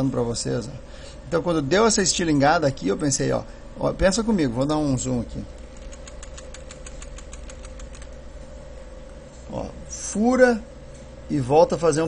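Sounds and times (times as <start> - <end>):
steady hum: 0.0 - 12.0
mouse scroll wheel clicks: 5.8 - 8.1.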